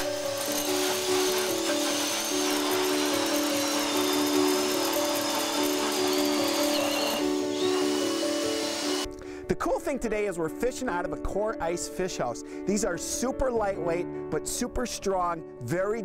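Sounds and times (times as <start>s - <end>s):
cordless drill grinding through ice: 0.0s - 9.1s
background music: 0.0s - 16.0s.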